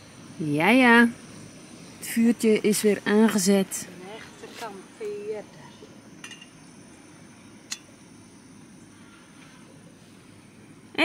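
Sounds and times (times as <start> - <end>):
camping stove burning: 0.0 - 11.0.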